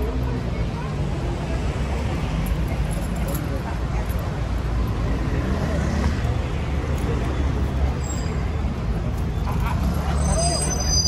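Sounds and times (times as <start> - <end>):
street traffic rumble: 0.0 - 11.0
voices talking: 0.0 - 11.0.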